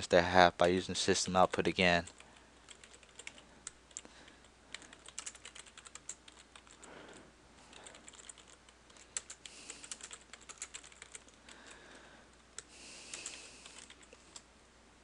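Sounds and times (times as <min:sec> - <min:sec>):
keyboard typing: 0:00.6 - 0:11.8, 0:12.5 - 0:14.5.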